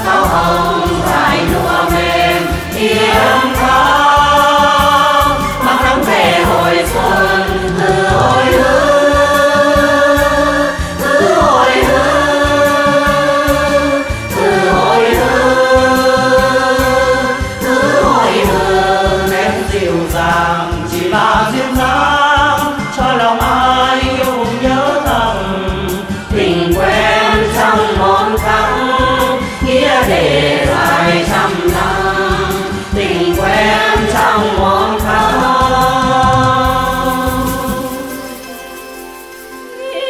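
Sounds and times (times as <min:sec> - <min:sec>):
group singing folk song: 0:00.0 - 0:38.5, 0:39.7 - 0:40.0.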